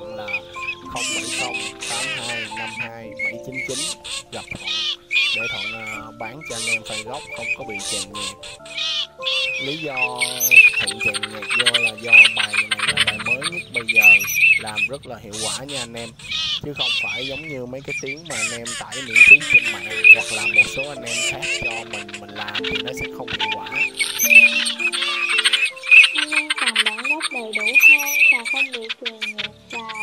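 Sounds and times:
man's voice: 0:00.0 - 0:08.4, 0:09.6 - 0:24.5
background music: 0:00.0 - 0:30.0
teal calls with rapid rattle: 0:00.0 - 0:30.0.

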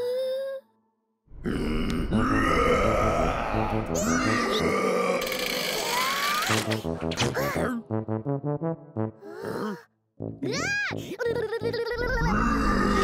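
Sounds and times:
cartoon characters grunting: 0:01.4 - 0:06.1, 0:12.0 - 0:13.0
background music: 0:01.4 - 0:13.0.

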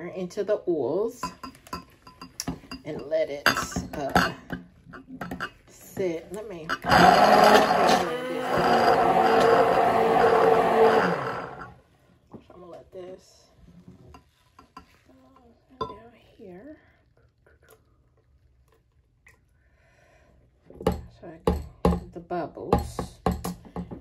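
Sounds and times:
stick blender running: 0:06.7 - 0:11.8.

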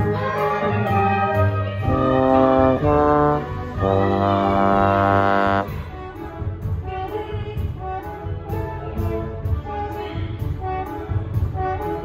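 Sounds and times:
trombone long note: 0:01.8 - 0:05.8.

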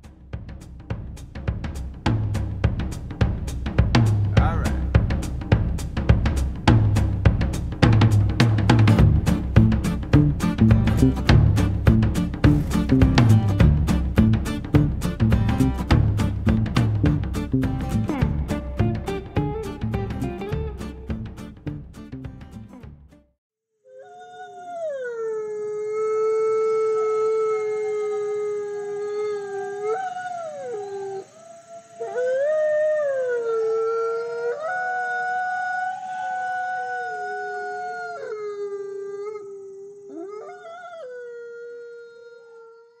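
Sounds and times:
animal howls: 0:23.9 - 0:43.0.

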